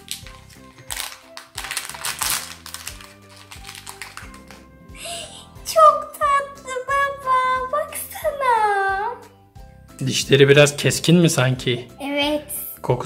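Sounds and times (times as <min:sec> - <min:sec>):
plastic wrapper crinkling: 0:00.0 - 0:04.7
background music: 0:00.0 - 0:13.0.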